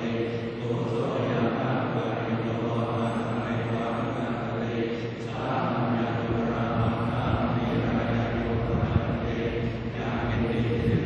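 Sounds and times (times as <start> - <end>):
monotone monastic chanting: 0.0 - 11.0.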